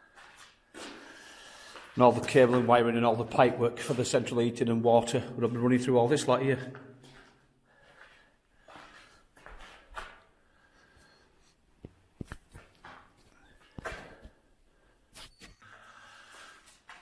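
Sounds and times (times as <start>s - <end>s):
footsteps on gritty concrete: 0.0s - 4.4s, 6.7s - 10.4s.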